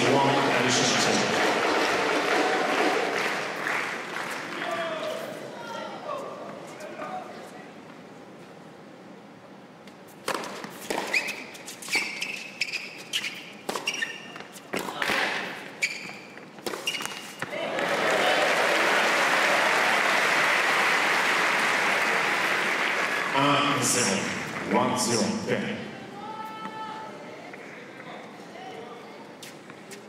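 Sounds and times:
crowd applauding: 0.0s - 4.9s, 17.5s - 24.7s
sneakers squeaking on court: 10.3s - 17.5s
racket striking tennis ball: 13.6s - 15.6s, 16.6s - 17.5s
man speaking: 23.3s - 25.9s.

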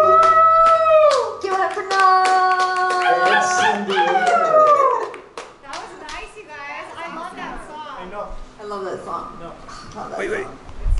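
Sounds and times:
hand claps: 0.0s - 6.3s.

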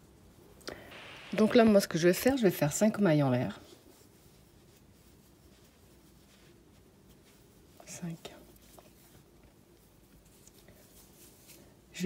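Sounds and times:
soft whispered vocal sound: 7.7s - 8.8s.

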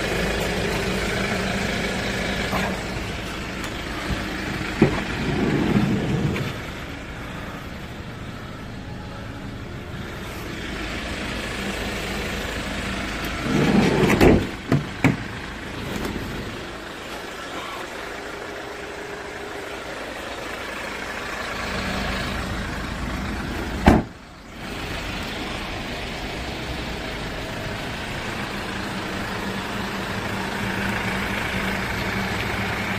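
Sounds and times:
van engine idling: 0.0s - 32.9s
sliding door slamming shut: 13.5s - 15.2s, 23.8s - 24.1s.

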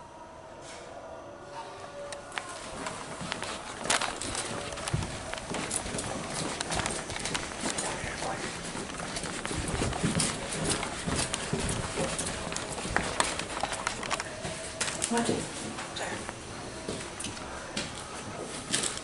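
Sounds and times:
clothing rustling: 2.5s - 16.0s
hurried footsteps on hard floor: 2.6s - 19.0s
camera jostling: 3.2s - 15.0s.

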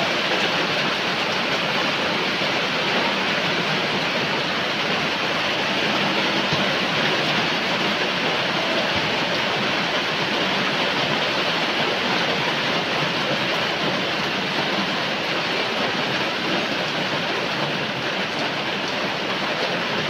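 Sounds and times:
heavy rain falling: 0.0s - 20.0s.

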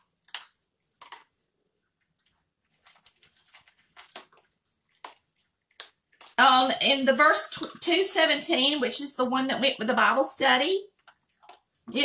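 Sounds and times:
thin pages rustling: 2.6s - 6.4s.

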